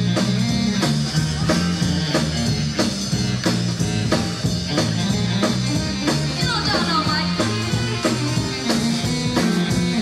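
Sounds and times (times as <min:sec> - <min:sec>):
bass line: 0:00.0 - 0:10.0
drum kit beat: 0:00.0 - 0:10.0
guitar: 0:00.0 - 0:10.0.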